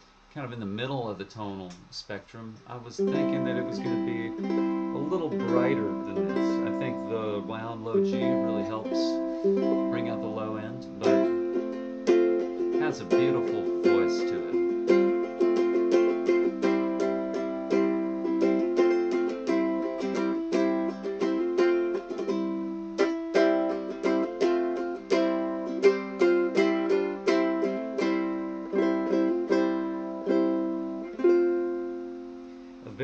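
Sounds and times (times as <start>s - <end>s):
ukulele strummed chords: 2.6s - 33.0s.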